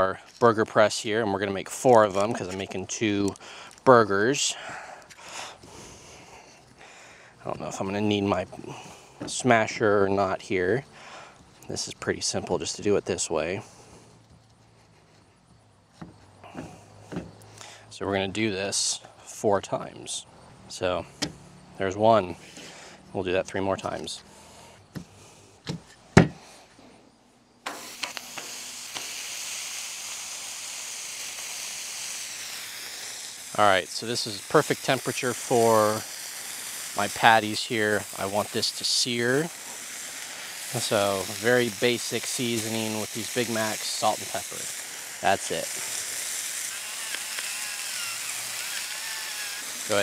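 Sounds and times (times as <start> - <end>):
patties sizzling on a griddle: 0.0 - 4.5, 27.7 - 50.0.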